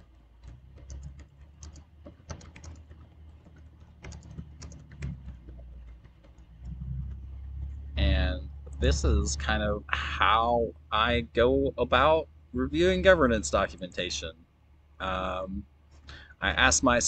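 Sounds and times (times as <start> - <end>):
keyboard typing clicks: 0.0 - 7.8
low hum: 0.0 - 17.0.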